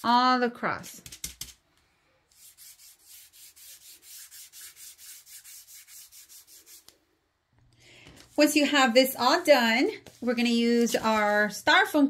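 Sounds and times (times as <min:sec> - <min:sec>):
foam sponge rubbing paint: 0:02.3 - 0:07.0.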